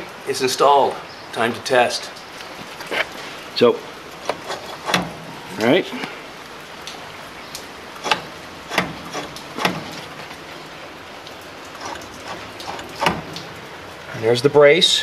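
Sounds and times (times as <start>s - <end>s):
faint steady hiss: 0.0s - 15.0s
light clicks and knocks: 4.2s - 5.2s, 6.8s - 10.5s, 11.2s - 13.5s.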